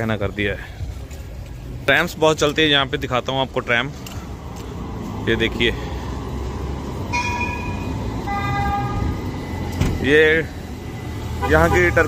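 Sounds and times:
tram rumbling past: 3.5 - 12.0.

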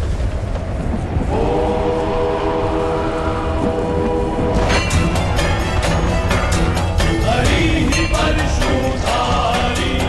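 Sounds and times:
low wind-like rumble: 0.0 - 10.0
horn-like sustained chord: 1.4 - 9.0.

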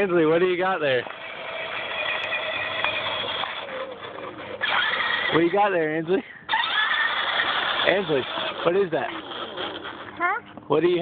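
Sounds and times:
electric toy motor whine: 0.3 - 5.7, 6.5 - 10.4.

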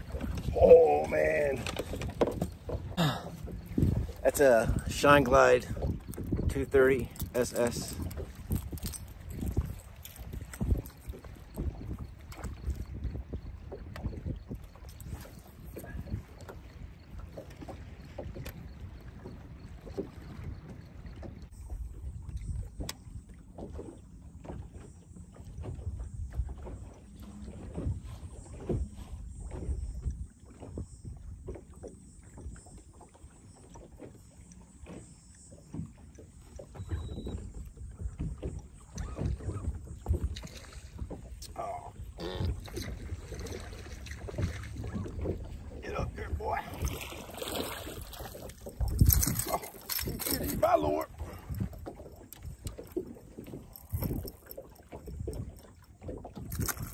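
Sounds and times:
wind rumble on microphone: 0.0 - 33.0, 35.7 - 56.9
small waves lapping against boat hull: 0.0 - 56.9.

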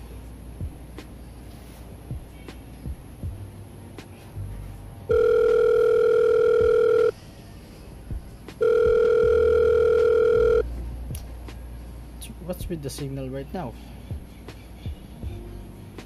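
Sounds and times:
telephone ringback tone: 5.1 - 7.2, 8.6 - 10.6.

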